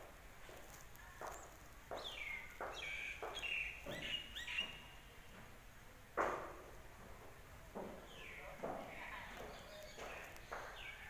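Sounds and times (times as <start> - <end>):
soft irregular knocks: 0.4 - 5.6, 6.2 - 11.0.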